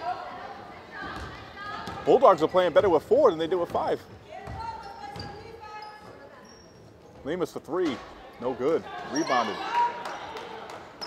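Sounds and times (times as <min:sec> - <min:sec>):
faint gym sounds: 0:00.0 - 0:11.0
basketball bouncing on wood floor: 0:03.7 - 0:05.4.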